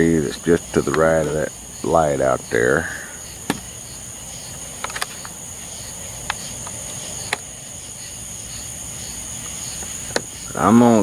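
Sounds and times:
high-pitched insect trill: 0:00.0 - 0:11.0
soft pulsing insect call: 0:00.0 - 0:11.0
sharp ticks: 0:06.2 - 0:07.5.

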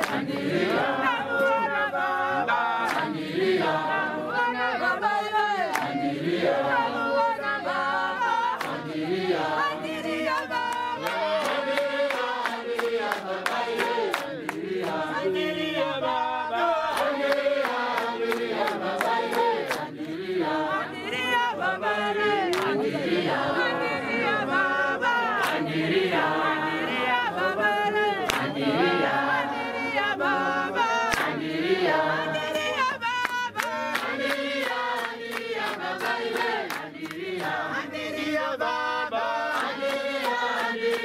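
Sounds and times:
congregation singing a hymn: 0:00.0 - 0:41.0.

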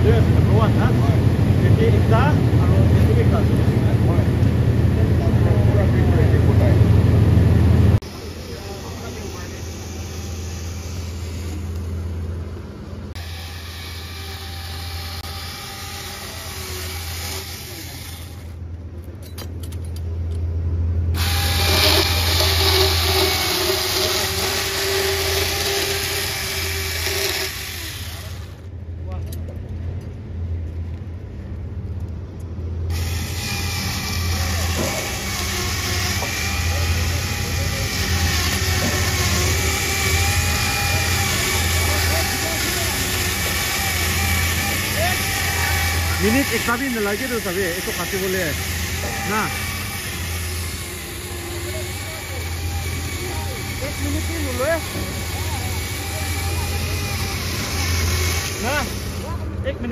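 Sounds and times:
chainsaw cutting through log: 0:08.0 - 0:12.1, 0:13.1 - 0:18.6, 0:21.2 - 0:28.6, 0:32.9 - 0:59.5.

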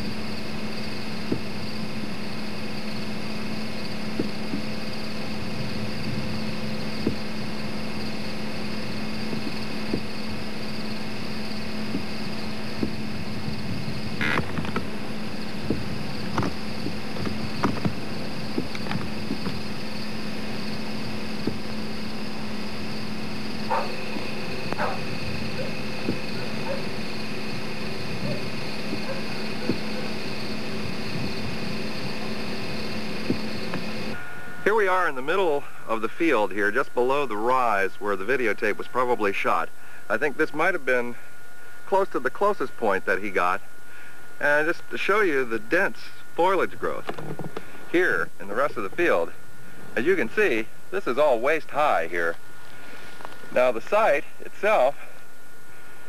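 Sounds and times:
even hiss: 0:00.0 - 0:56.0
steady low hum: 0:00.0 - 0:56.0.

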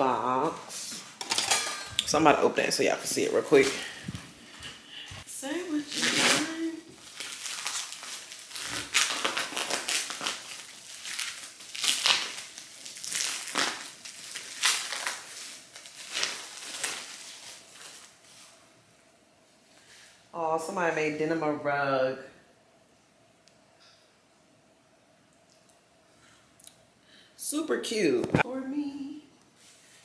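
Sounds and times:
plastic packaging crinkling: 0:05.6 - 0:18.5.

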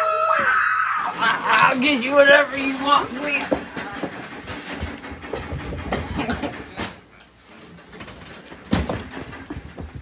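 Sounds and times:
knocks and thumps on a bed: 0:08.6 - 0:10.0.

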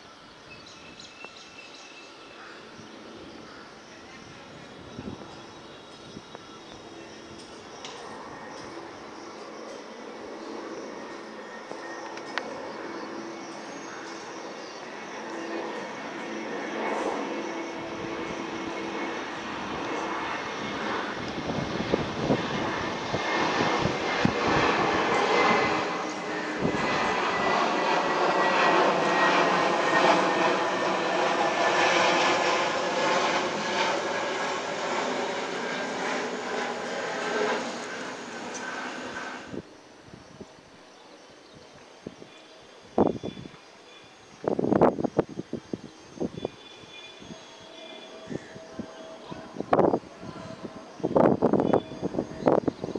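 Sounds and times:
jet engine rush: 0:02.6 - 0:40.6, 0:44.2 - 0:52.9.

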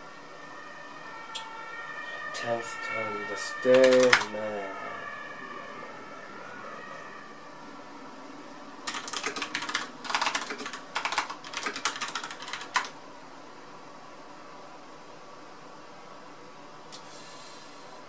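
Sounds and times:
rapid typing on keyboard: 0:03.6 - 0:04.3, 0:08.8 - 0:13.0.

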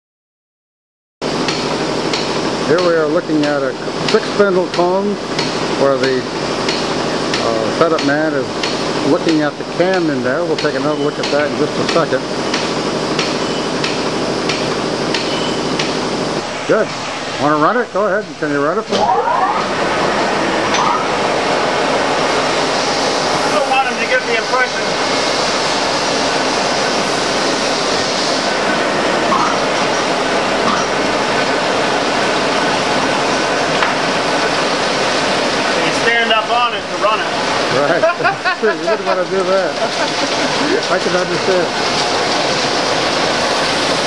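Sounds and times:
machine-shop din: 0:01.2 - 0:44.0
lathe running: 0:01.5 - 0:44.0.

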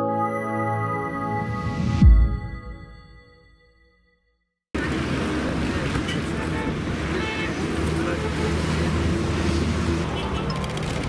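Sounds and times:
people talking: 0:04.8 - 0:09.2
road traffic engine hum: 0:04.8 - 0:11.0.

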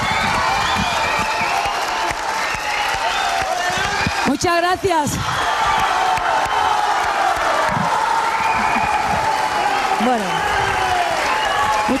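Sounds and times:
studio audience applauding: 0:00.0 - 0:12.0.

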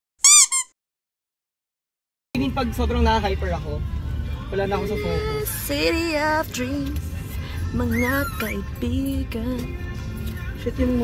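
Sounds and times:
high-pitched squeaky sound effect: 0:00.2 - 0:00.8.

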